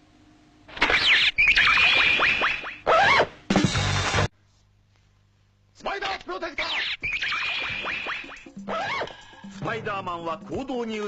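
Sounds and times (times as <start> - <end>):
electronic falling whistle glides: 0.8 - 3.3, 6.7 - 9.1
held high electronic tone: 6.6 - 10.5.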